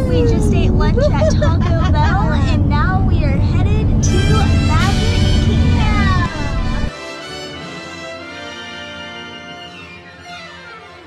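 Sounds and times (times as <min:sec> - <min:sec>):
woman laughing: 0:00.0 - 0:02.7
car cabin road rumble: 0:00.0 - 0:06.9.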